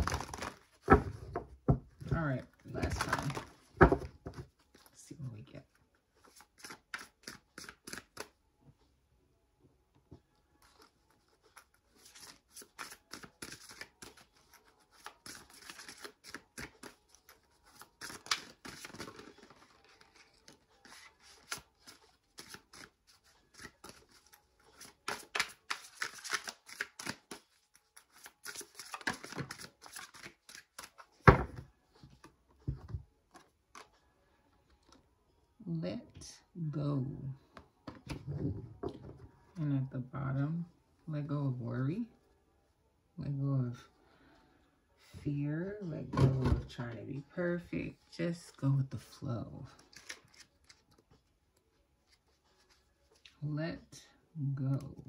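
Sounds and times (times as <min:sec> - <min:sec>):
cards being shuffled: 0:00.0 - 0:01.1, 0:02.6 - 0:04.9, 0:06.2 - 0:08.4, 0:10.6 - 0:34.0, 0:49.7 - 0:53.4.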